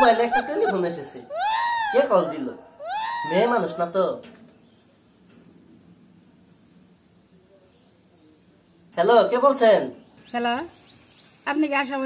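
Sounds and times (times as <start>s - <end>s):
man's high-pitched laughing cry: 0.0s - 4.0s.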